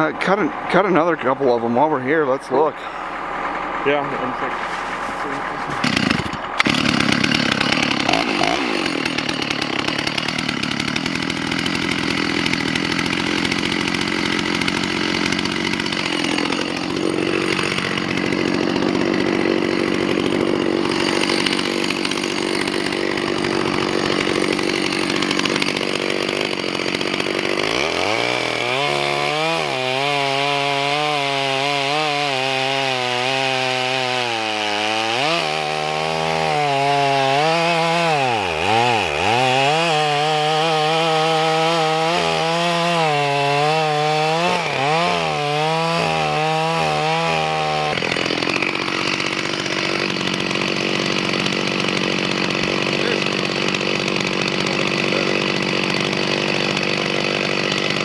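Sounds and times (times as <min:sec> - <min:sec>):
chainsaw cutting log: 0:00.0 - 0:58.0.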